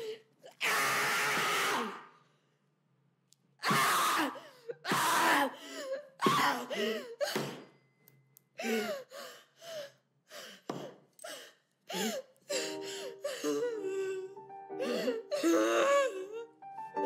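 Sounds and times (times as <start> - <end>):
woman sobbing: 4.0 - 7.4, 8.6 - 16.5.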